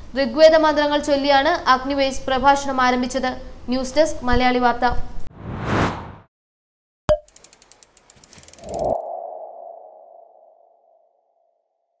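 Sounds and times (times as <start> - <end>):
quick run of ticks: 7.3 - 9.0.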